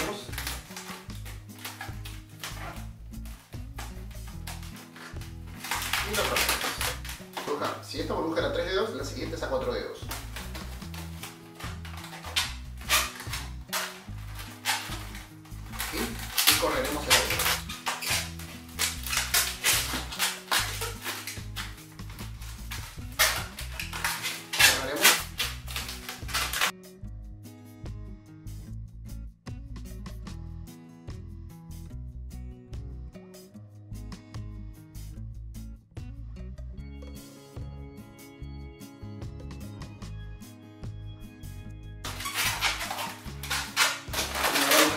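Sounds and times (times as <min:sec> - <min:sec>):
balloons squeaking while twisted: 0:00.0 - 0:26.7, 0:42.0 - 0:44.9
background music with bass line: 0:00.0 - 0:44.9.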